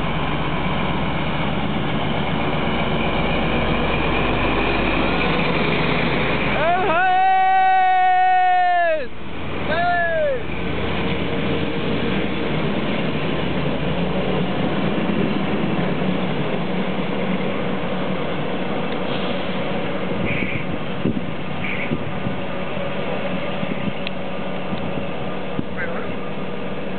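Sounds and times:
train wheels rumbling on rail: 0:00.0 - 0:26.9.

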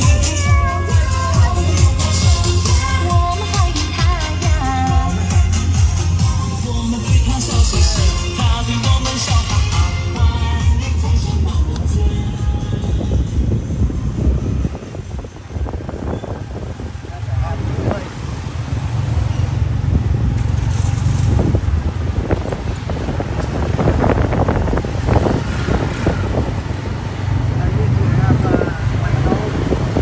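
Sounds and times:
background voices: 0:00.0 - 0:13.6
music: 0:00.0 - 0:14.3
motorcycle rumble: 0:00.0 - 0:30.0
street traffic: 0:00.0 - 0:30.0.

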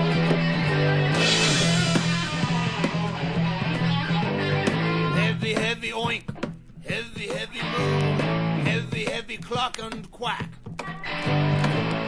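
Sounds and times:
distorted electric guitar: 0:00.0 - 0:12.0.

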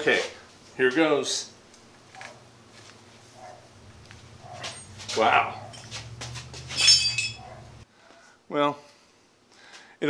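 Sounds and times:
steel strip clinking on metal: 0:06.7 - 0:07.6.

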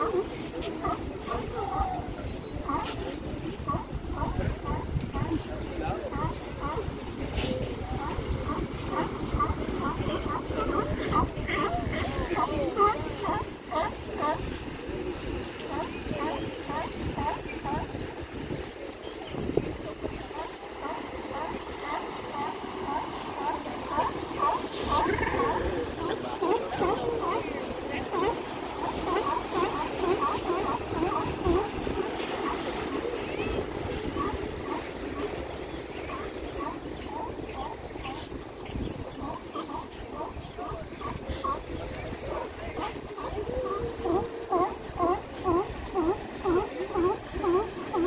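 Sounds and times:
sea lions barking: 0:00.0 - 0:48.0
surf washing on rocks: 0:00.0 - 0:48.0.

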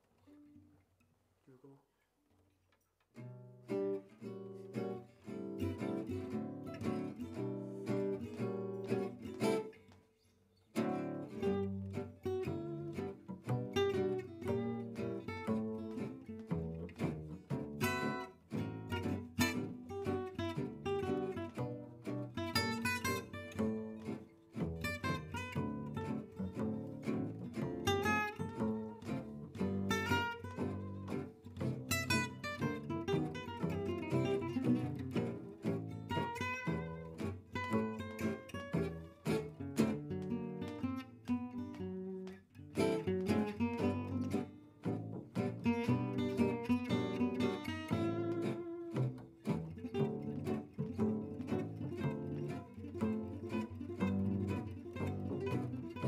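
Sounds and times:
rhythm guitar: 0:03.1 - 0:56.0
lead acoustic guitar picking melody: 0:03.2 - 0:56.0
plucked double bass: 0:10.8 - 0:56.0.

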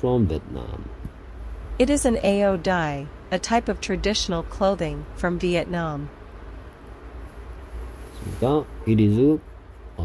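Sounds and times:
man talking: 0:00.0 - 0:01.0, 0:08.2 - 0:09.4
faint hiss: 0:00.0 - 0:02.5, 0:06.6 - 0:10.0
low steady hum: 0:00.0 - 0:10.0.

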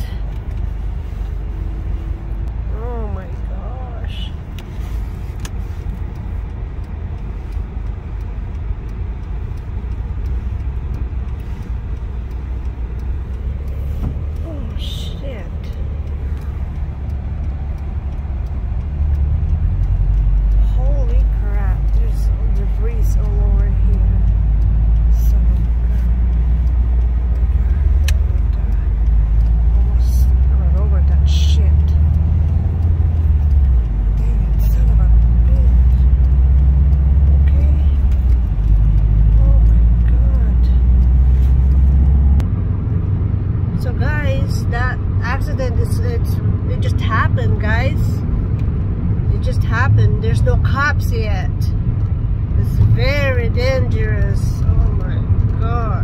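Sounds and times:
road and engine rumble in car: 0:00.0 - 0:56.0.

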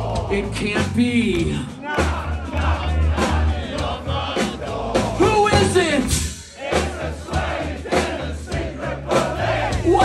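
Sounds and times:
punk band playing live: 0:00.0 - 0:10.0
crowd shouting along: 0:06.6 - 0:10.0.

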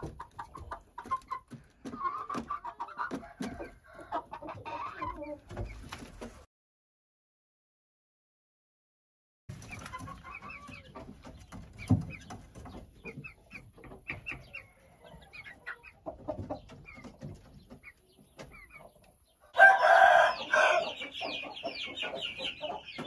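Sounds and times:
chicks peeping and clucking: 0:00.0 - 0:06.4, 0:09.5 - 0:23.0
young rooster crowing: 0:19.5 - 0:21.0.

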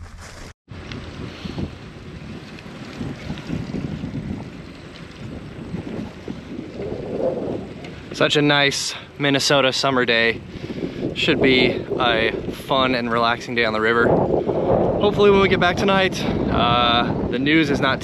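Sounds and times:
wind buffeting microphone: 0:00.7 - 0:18.0.

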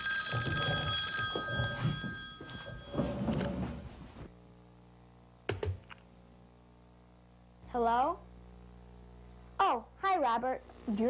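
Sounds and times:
telephone ringing: 0:00.0 - 0:04.0.

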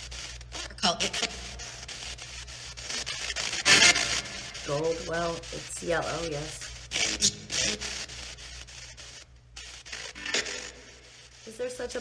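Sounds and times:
loud burst of static: 0:00.0 - 0:12.0
radio static chopped into steps: 0:00.0 - 0:12.0.

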